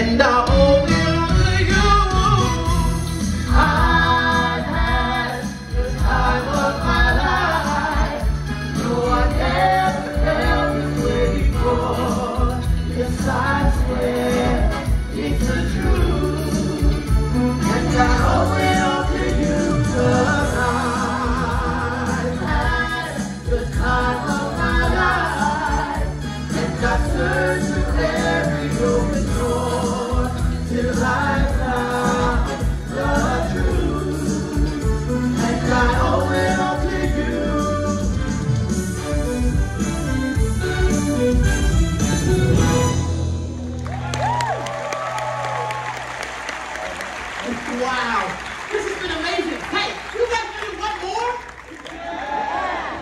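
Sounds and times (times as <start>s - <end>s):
group of singers: 0.0s - 39.9s
music with bass and beat: 0.0s - 43.7s
audience applauding: 43.7s - 53.0s.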